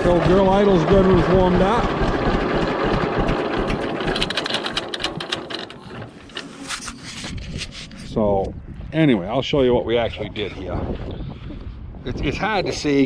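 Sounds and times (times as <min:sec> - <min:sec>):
tractor engine idling: 0:00.0 - 0:06.5.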